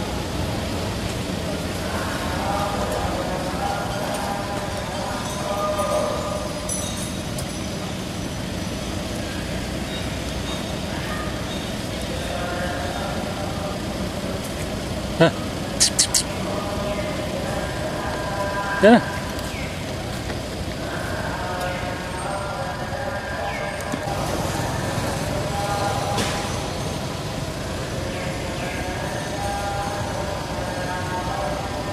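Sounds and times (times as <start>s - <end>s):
distant voices: 0.0s - 31.9s
passing traffic: 0.0s - 31.9s
short high chirps: 15.8s - 16.3s.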